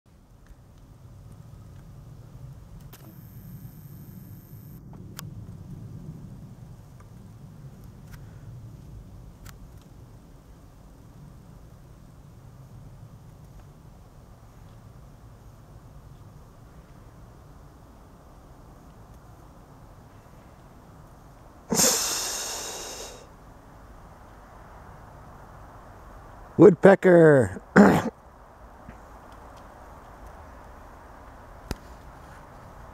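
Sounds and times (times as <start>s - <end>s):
camera zoom motor whine: 2.9s - 4.8s
person breathing through nose: 21.7s - 23.3s.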